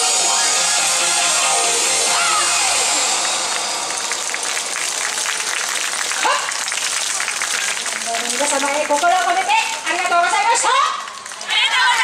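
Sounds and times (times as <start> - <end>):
audience applauding: 1.4 - 12.0.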